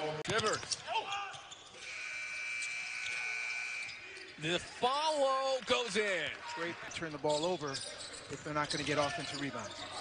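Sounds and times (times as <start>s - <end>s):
basketball arena sound: 0.0s - 10.0s.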